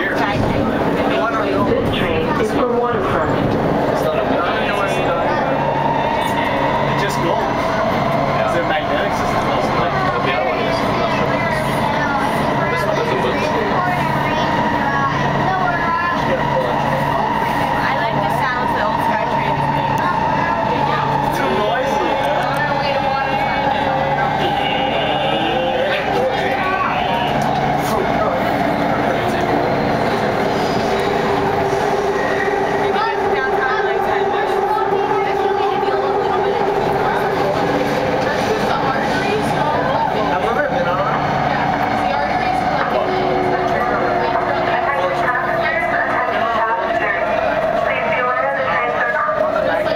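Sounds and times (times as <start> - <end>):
passengers' voices: 0.0 - 49.9
train wheels rumbling on rail: 0.0 - 49.9
train whine: 0.0 - 49.9.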